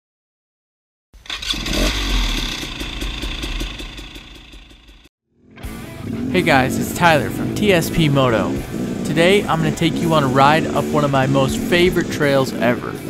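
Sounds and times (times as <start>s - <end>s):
motorcycle engine: 1.2s - 13.0s
intro music: 5.5s - 13.0s
low rumble: 5.7s - 12.6s.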